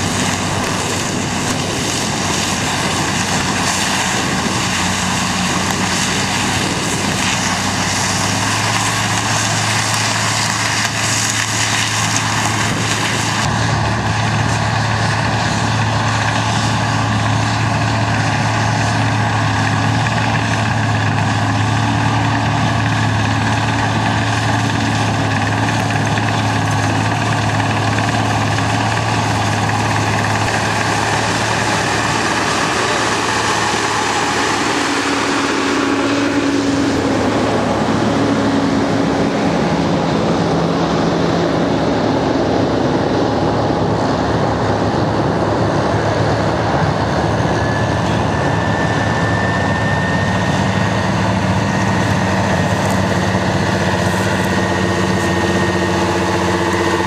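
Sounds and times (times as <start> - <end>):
cane harvester working: 0.0 - 57.0
tractor diesel engine drone: 0.0 - 57.0.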